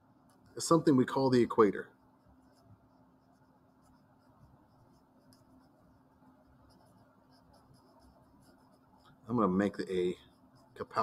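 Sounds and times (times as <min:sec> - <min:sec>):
low steady hum: 0:00.0 - 0:11.0
marker scratching on paper: 0:00.2 - 0:11.0.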